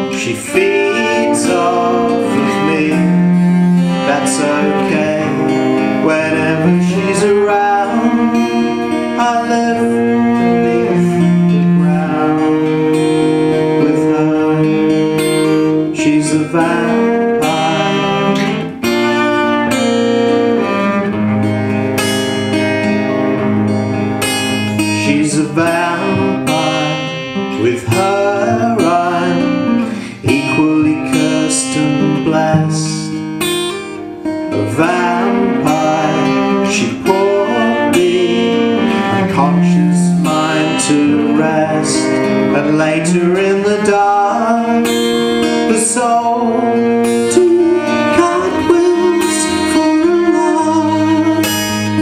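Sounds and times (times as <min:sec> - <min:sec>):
bowed cello long notes: 0:00.0 - 0:33.4, 0:34.0 - 0:52.0
acoustic guitar: 0:00.0 - 0:52.0.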